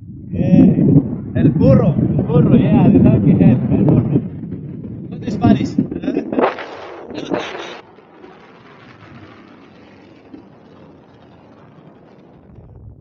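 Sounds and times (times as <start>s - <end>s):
wind rushing over microphone: 0.0s - 13.0s.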